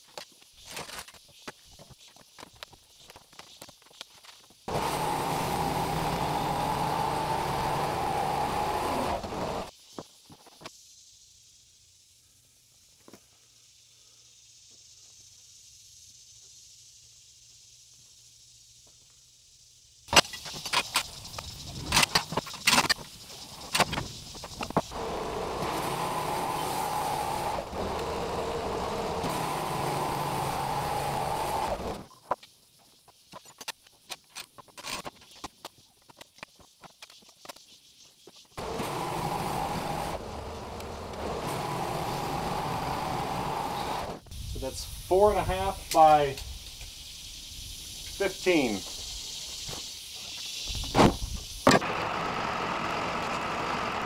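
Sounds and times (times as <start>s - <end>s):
band sawmill running: 4.7s - 9.7s, 24.7s - 32.0s, 38.6s - 44.2s, 51.7s - 54.0s.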